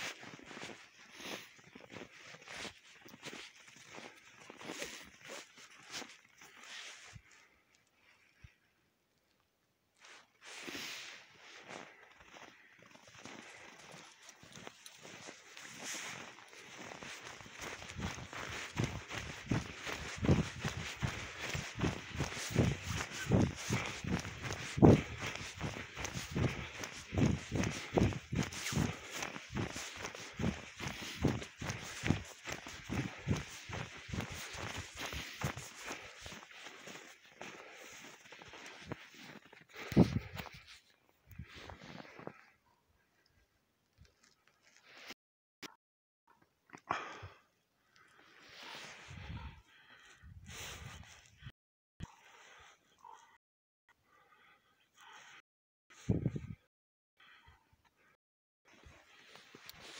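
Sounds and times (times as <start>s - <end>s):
footsteps crunching in snow: 0.0s - 7.5s, 10.0s - 42.4s, 58.7s - 59.9s.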